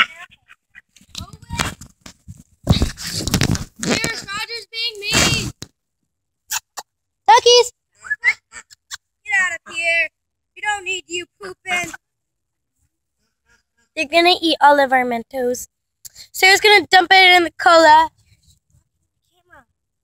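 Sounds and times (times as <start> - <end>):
phone rustling in grass: 0.7 - 5.6
girls' voices: 3.8 - 5.5.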